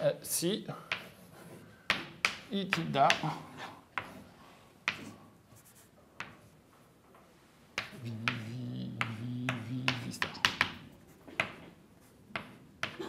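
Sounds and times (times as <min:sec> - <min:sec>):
chalk tapping on blackboard: 0:00.9 - 0:03.3, 0:07.8 - 0:11.7, 0:12.3 - 0:13.0.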